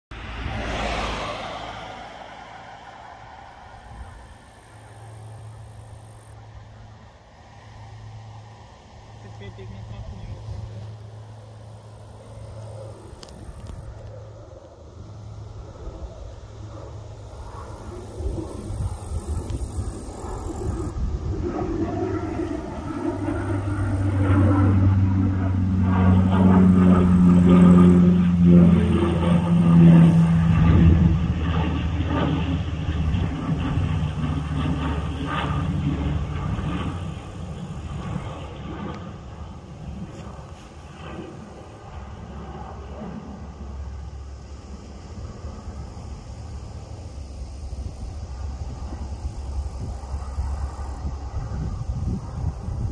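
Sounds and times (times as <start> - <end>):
propeller plane passing overhead: 0.1 - 52.9.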